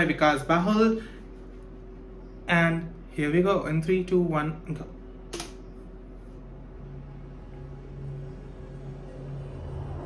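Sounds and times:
faint low hum: 0.0s - 10.0s
faint low drone: 4.8s - 10.0s
sharp click: 5.3s - 5.6s.

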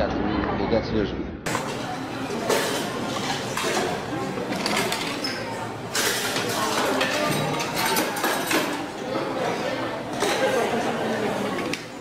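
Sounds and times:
plates and dishes clattering: 1.5s - 11.9s
background chatter: 1.5s - 12.0s.

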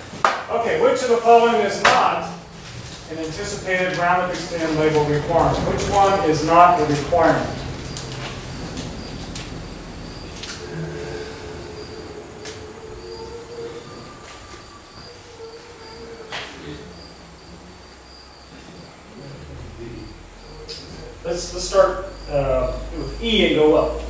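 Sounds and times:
cricket chirping: 0.0s - 24.0s.

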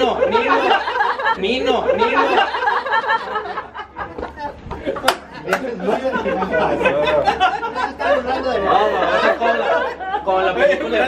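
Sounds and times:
men laughing: 0.0s - 11.0s
men talking: 0.0s - 11.0s.

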